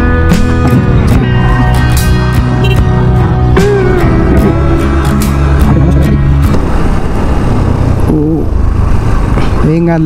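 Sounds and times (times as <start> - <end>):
background music: 0.0 - 8.1
motorcycle engine: 0.0 - 9.6
wind on microphone: 3.6 - 10.0.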